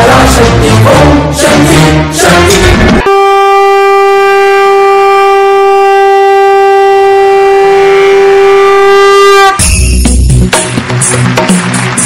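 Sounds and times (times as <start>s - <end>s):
dance music: 0.0s - 5.3s, 8.6s - 12.0s
conch shell blown: 3.0s - 9.7s.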